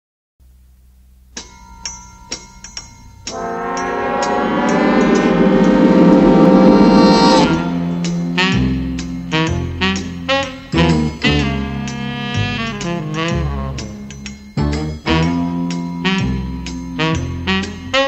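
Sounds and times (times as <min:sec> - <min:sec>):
ringing struck notes: 0:01.4 - 0:12.0
sustained orchestral chord: 0:03.3 - 0:11.1.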